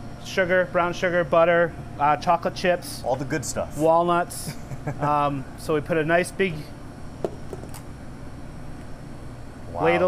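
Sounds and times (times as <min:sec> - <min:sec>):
kitchen ventilation hum: 0:00.0 - 0:10.0.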